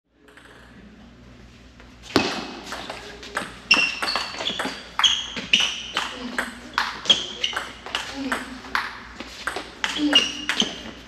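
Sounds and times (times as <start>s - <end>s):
faint hall hum: 0.1s - 11.0s
table tennis ball pings: 2.2s - 10.9s.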